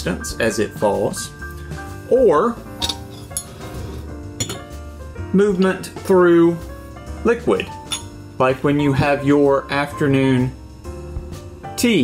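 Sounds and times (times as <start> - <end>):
soft background music: 0.0 - 12.0
metal spoon clinking mug: 2.8 - 3.6, 4.4 - 4.7, 7.9 - 8.1.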